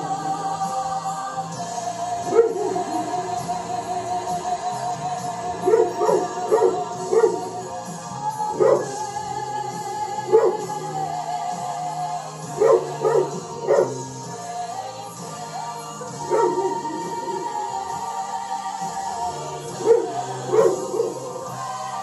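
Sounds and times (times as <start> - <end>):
music: 0.0 - 22.0
dog barking: 2.3 - 2.9, 5.6 - 7.6, 8.6 - 9.0, 10.3 - 10.7, 12.5 - 14.1, 16.2 - 17.0, 19.7 - 21.4.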